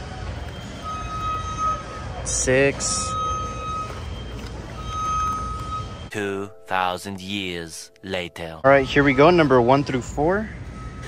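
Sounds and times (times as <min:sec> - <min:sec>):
low store hum: 0:00.0 - 0:11.0.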